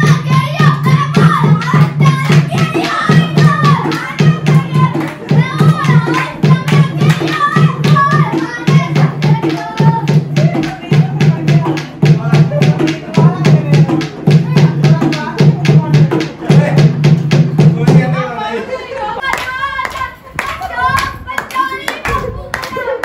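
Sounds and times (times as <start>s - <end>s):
women and girls singing: 0.0s - 16.0s, 18.4s - 23.0s
hand clapping: 0.0s - 17.4s, 19.3s - 23.0s
barrel drum fast beat: 0.0s - 18.2s.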